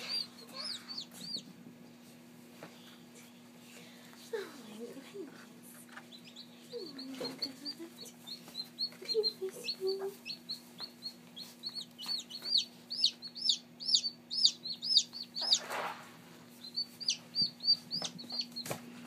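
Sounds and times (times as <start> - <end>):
chick peeping: 0.0 - 1.5, 5.8 - 18.8.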